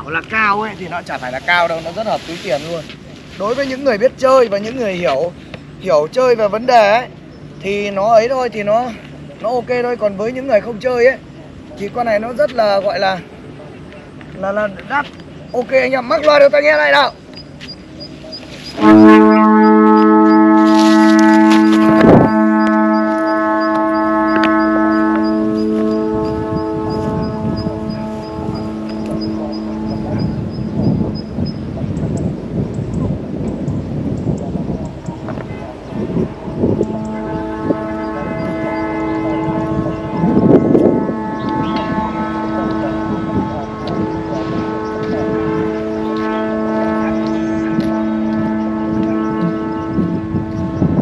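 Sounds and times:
wind noise on microphone: 17.6 - 51.0
kite flutes chord: 18.4 - 31.4, 35.2 - 51.0.

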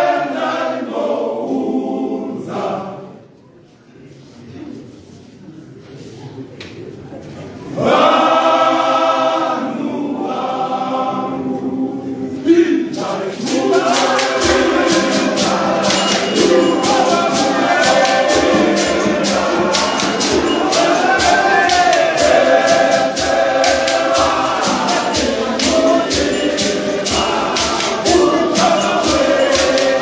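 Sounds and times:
men's choir singing gospel: 0.0 - 3.2, 7.7 - 30.0
rhythmic handclaps: 12.9 - 30.0.

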